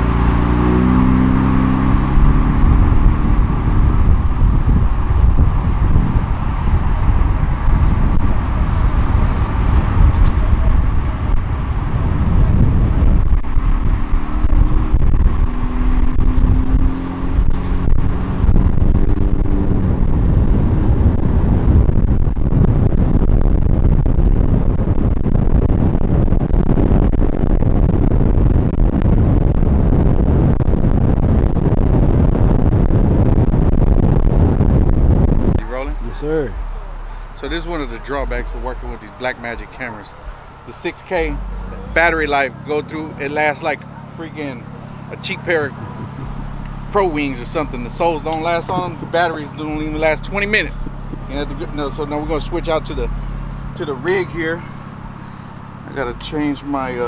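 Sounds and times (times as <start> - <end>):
car engine running: 0.0 - 57.0
cars driving by: 0.0 - 57.0
road and wind noise: 0.0 - 57.0.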